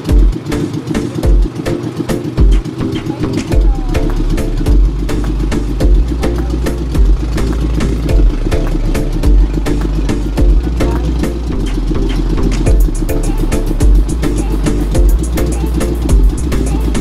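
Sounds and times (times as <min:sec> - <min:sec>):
deep bass thumps: 0:00.0 - 0:00.4, 0:01.2 - 0:01.6, 0:02.3 - 0:02.7, 0:03.4 - 0:17.0
sustained pitched line: 0:00.0 - 0:17.0
quick clicking percussion: 0:09.7 - 0:17.0.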